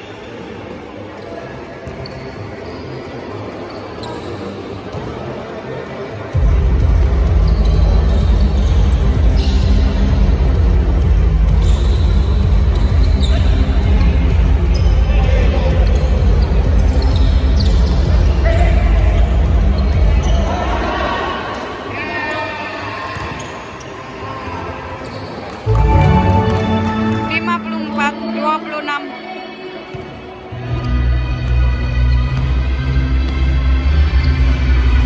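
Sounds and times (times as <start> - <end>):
sneakers squeaking on court: 1.1 - 5.4, 7.0 - 10.8, 11.4 - 20.9, 23.1 - 24.1, 25.0 - 27.8, 29.9 - 33.5
loud bass-heavy music: 6.4 - 20.2.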